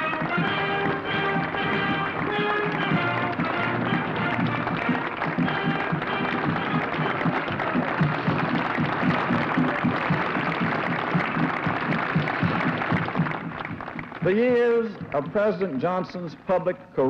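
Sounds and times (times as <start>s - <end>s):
crowd applauding: 0.0s - 16.4s
music playing: 0.0s - 16.8s.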